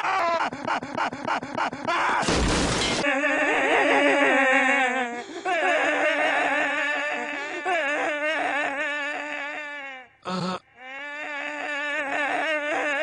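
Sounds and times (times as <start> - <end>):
shattering crash: 2.2 - 3.0.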